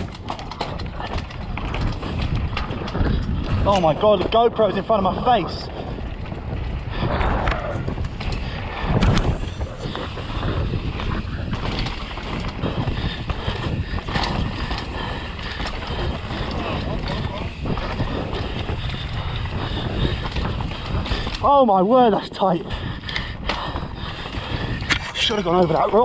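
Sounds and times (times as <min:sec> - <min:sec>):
bike rattling over rocks: 0:00.0 - 0:26.0
tyres rushing on loose dirt: 0:00.0 - 0:26.0
wind: 0:00.0 - 0:26.0.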